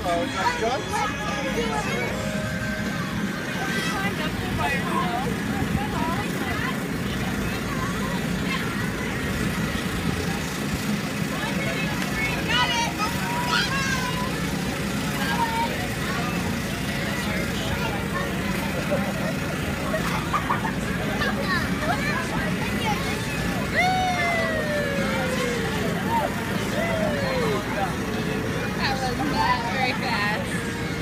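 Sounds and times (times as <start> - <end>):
children shouting: 12.5 - 16.5, 17.9 - 28.4
electric blower droning: 22.6 - 31.0.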